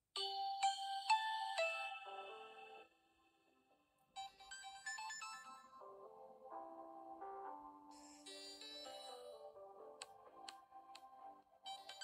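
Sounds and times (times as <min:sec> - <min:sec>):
bell-like electronic ringtone: 0:04.2 - 0:05.8, 0:07.9 - 0:09.4.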